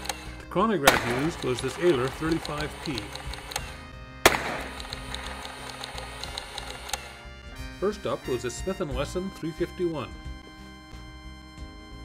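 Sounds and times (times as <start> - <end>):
background music: 0.0 - 12.0
gunshot crack: 0.8 - 1.5, 4.2 - 5.1.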